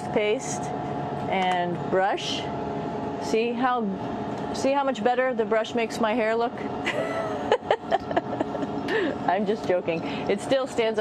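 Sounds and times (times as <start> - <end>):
steady cabin air hum: 0.0 - 11.0
woman laughing: 6.8 - 9.2.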